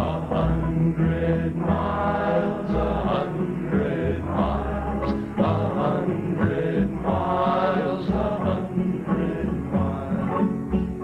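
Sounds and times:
men singing in harmony: 0:00.0 - 0:10.6
strummed acoustic guitars: 0:00.0 - 0:11.0.

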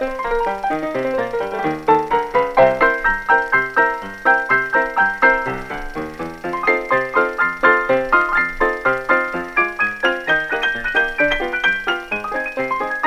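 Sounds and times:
bouncy melody of struck notes: 0:00.0 - 0:13.0.

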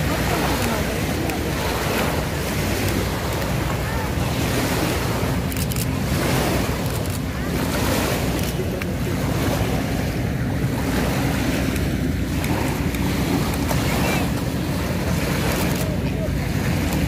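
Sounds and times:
waves lapping on sandy shore: 0:00.0 - 0:17.0
wind rumbling on microphone: 0:00.0 - 0:17.0.

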